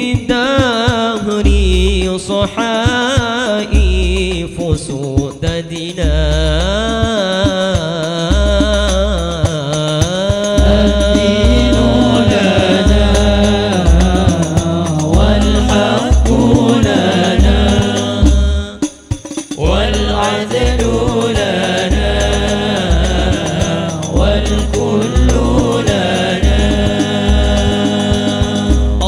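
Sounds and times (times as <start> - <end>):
frame drums: 0.0 - 29.0
men singing: 0.0 - 29.0.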